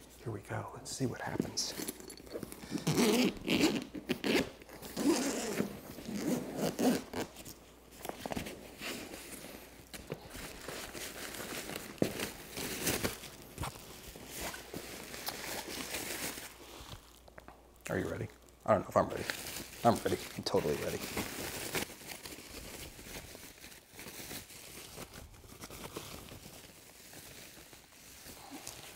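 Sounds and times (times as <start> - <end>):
plastic wrapping crinkling: 0.9 - 28.9
zipper rasping open: 1.7 - 7.4.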